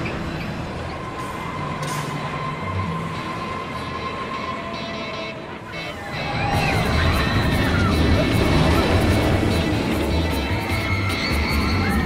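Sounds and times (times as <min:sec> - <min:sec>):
roller coaster rolling on track: 0:00.0 - 0:12.0.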